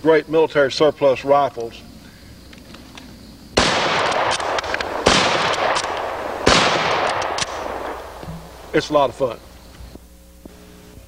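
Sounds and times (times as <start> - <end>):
rifle shots echoing: 3.6 - 9.3.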